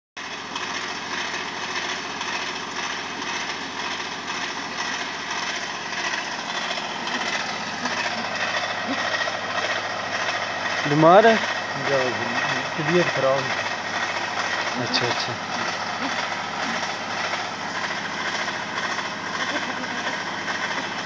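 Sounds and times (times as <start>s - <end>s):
steady mechanical drone: 0.2s - 21.0s.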